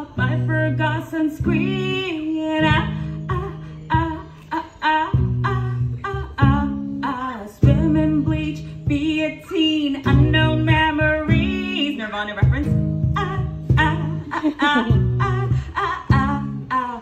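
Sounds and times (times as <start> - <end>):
strummed acoustic guitar: 0.0 - 17.0
woman singing: 0.0 - 17.0.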